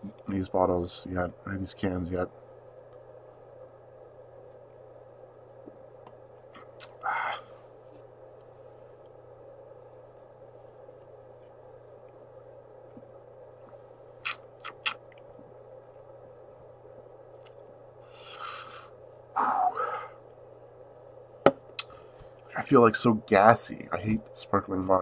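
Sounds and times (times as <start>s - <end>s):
man talking: 0.0s - 2.3s, 22.5s - 25.0s
room hum: 0.0s - 25.0s
man breathing out: 18.1s - 20.2s.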